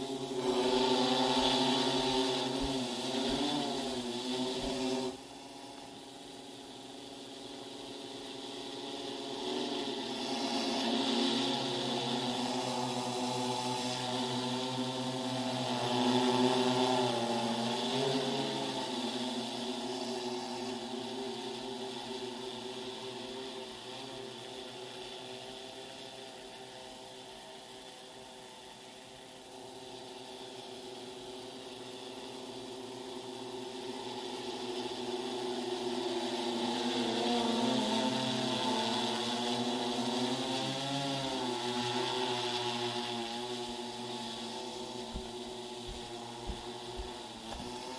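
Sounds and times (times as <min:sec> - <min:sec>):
drone rotors humming: 0:00.0 - 0:47.9.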